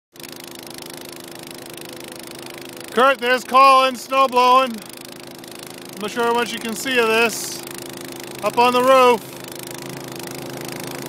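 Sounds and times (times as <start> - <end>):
snowblower engine drone: 0.1 - 11.0.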